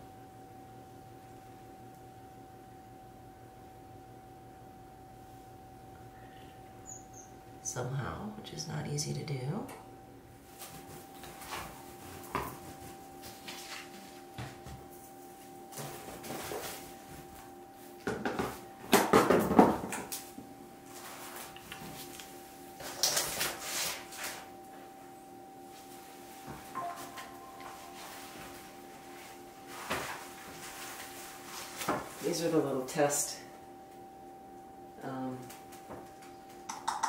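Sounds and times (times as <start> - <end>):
faint steady hum: 0.0 - 37.0
plastic tarp and cardboard rustling: 15.7 - 17.3, 22.8 - 24.5, 27.8 - 32.6.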